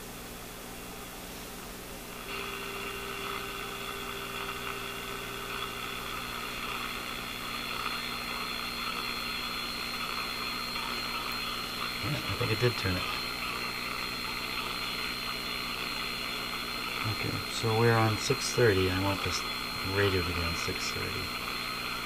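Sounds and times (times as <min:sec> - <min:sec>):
low mains hum: 0:00.0 - 0:22.0
radio static hiss: 0:00.0 - 0:22.0.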